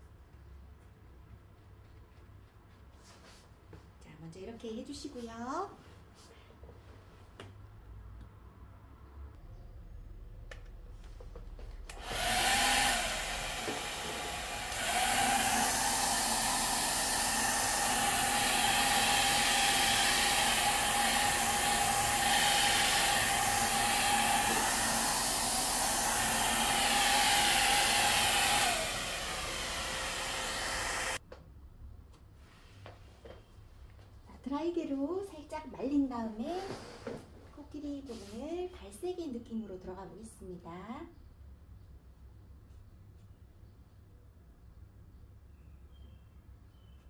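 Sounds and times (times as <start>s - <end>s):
hair dryer blowing: 11.7s - 31.2s.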